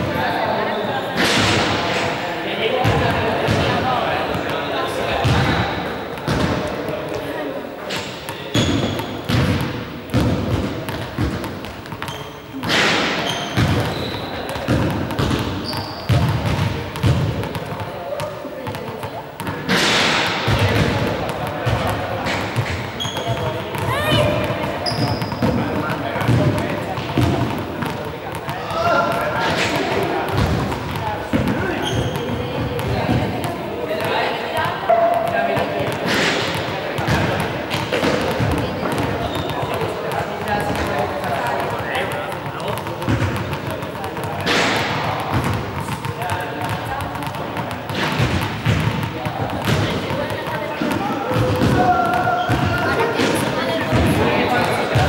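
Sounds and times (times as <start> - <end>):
balls bouncing on hall floor: 0.0 - 55.0.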